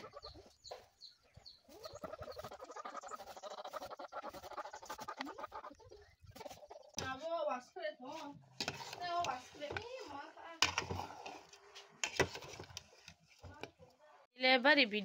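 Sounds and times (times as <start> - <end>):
chickens clucking: 0.0 - 7.2
small birds chirping: 0.0 - 10.4.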